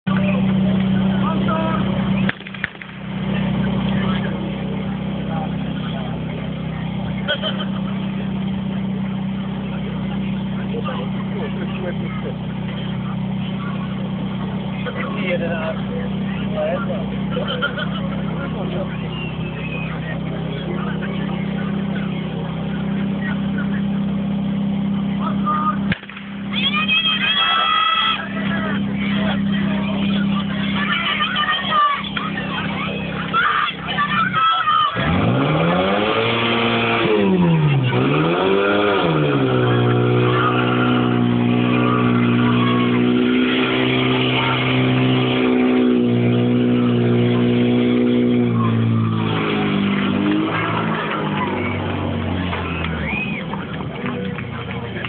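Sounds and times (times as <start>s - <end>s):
pump engine running at high revs: 0.1s - 55.0s
spectators shouting and cheering: 0.1s - 55.0s.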